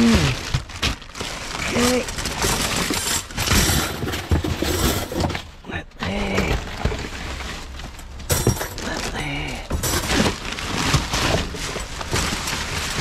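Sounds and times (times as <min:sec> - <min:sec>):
plastic film and bubble wrap crackling: 0:00.0 - 0:03.6, 0:08.8 - 0:13.0.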